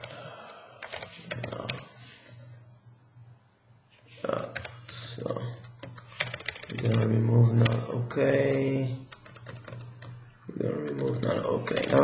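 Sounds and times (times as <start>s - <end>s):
keyboard typing: 0.0s - 0.2s, 0.8s - 1.9s, 4.4s - 12.0s
low steady hum: 0.0s - 12.0s.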